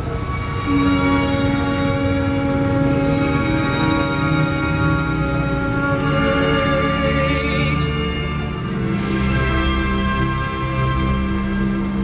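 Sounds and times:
man singing long note: 0.0s - 11.4s.

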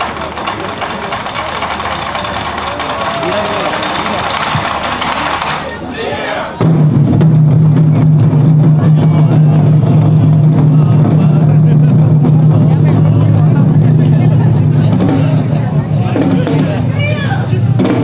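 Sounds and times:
taiko drums rolling: 0.0s - 5.9s, 6.5s - 18.0s.

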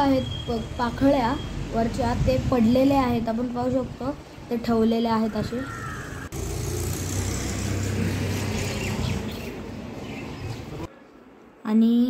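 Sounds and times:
motor vehicle passing: 0.3s - 3.1s, 5.5s - 10.9s.

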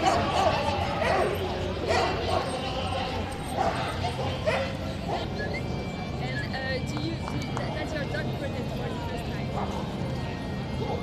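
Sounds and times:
dogs barking: 0.0s - 5.4s, 9.5s - 10.0s
crowd chatter: 0.0s - 11.0s.

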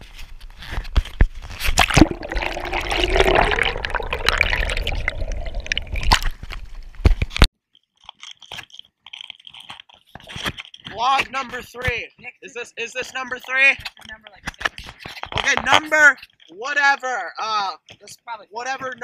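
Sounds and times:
water gurgling and sloshing: 1.4s - 7.4s.

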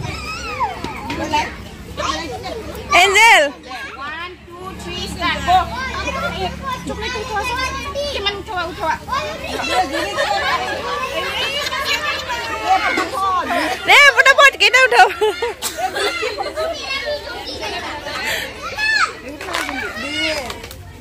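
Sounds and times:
child's high-pitched shout: 0.0s - 1.0s, 13.9s - 20.5s
children chattering: 0.0s - 21.0s.

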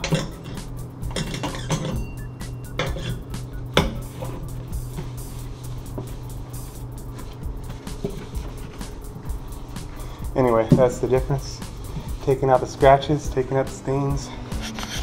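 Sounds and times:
background music: 0.0s - 15.0s
cloth wiping steel sink: 2.8s - 15.0s.

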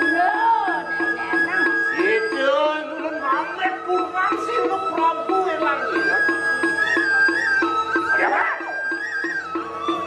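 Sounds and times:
gamelan music: 0.0s - 10.0s.

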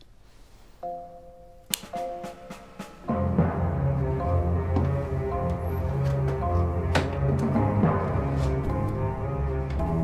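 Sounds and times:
soft steady musical note: 0.5s - 10.0s
light switch click: 1.7s - 1.9s.

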